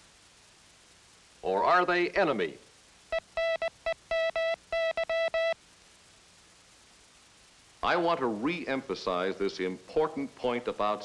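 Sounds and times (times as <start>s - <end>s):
morse code tone: 3.1s - 5.6s.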